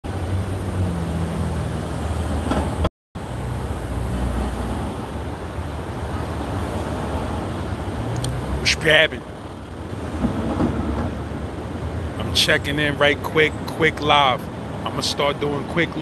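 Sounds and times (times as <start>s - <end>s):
street traffic: 0.0s - 16.0s.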